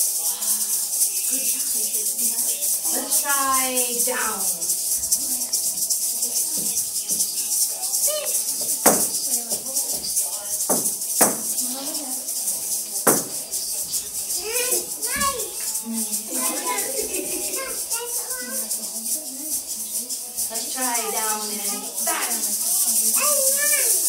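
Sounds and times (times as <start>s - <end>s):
children's song: 0.0s - 24.0s
plastic egg shakers rattling: 0.0s - 24.0s
sharp taps: 8.8s - 9.2s, 10.7s - 11.5s, 13.1s - 13.4s.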